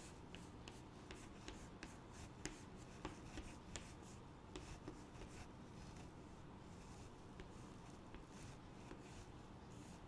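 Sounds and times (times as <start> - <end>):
chalk strokes on blackboard: 0.0 - 10.0.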